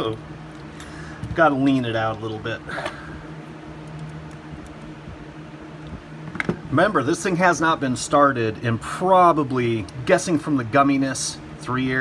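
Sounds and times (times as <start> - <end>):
low fan hum: 0.0 - 12.0.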